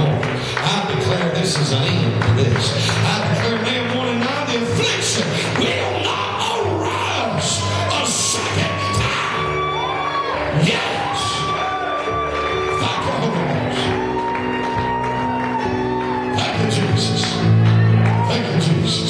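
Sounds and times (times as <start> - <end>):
long held keyboard chords: 0.0 - 19.0.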